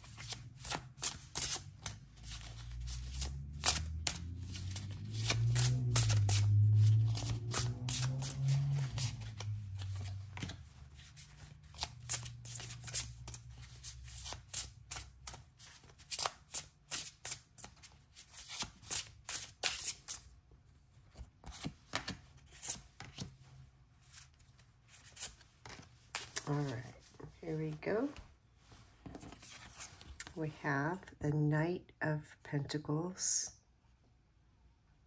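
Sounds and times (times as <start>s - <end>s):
cards being shuffled: 0.0s - 20.2s, 21.1s - 23.4s, 24.0s - 28.3s, 29.0s - 30.4s.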